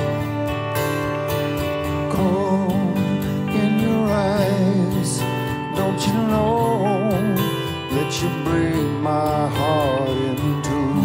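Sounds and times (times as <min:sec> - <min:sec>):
acoustic guitar: 0:00.0 - 0:11.0
man singing a wavering note: 0:02.0 - 0:11.0.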